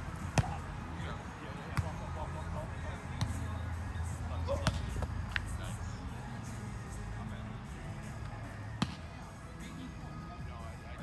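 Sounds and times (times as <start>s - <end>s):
volleyball slaps: 0.2s - 0.6s, 4.6s - 5.5s, 8.8s - 9.2s.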